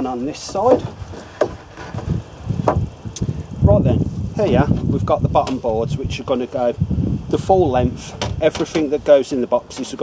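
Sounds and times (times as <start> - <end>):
wooden planks knocking and thudding: 0.0 - 2.9, 8.0 - 9.0
sharp wooden knocks: 0.4 - 2.9.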